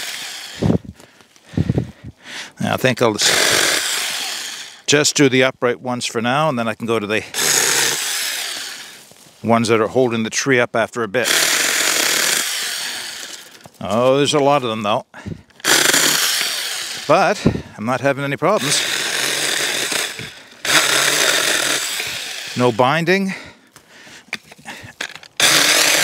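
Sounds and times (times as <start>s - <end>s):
electric chainsaw cutting branch: 0.0s - 0.8s, 3.2s - 4.9s, 7.4s - 9.0s, 11.2s - 13.7s, 15.6s - 17.4s, 18.6s - 23.1s, 25.0s - 26.0s.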